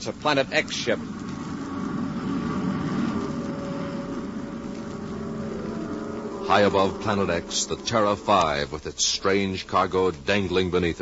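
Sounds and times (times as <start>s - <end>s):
faint hum: 0.0s - 11.0s
rocket engine rushing drone: 0.4s - 9.3s.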